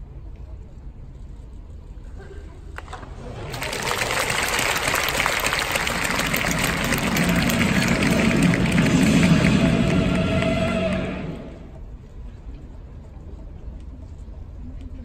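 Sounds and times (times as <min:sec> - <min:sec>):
crowd applauding: 0:03.2 - 0:11.8
stadium music: 0:03.5 - 0:11.8.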